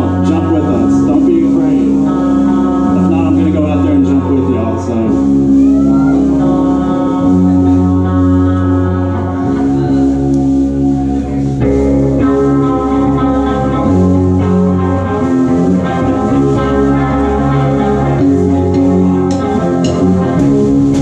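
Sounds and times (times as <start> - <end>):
bass guitar: 0.0 - 21.0
drums: 0.0 - 21.0
electric guitars sustained chords: 0.0 - 21.0.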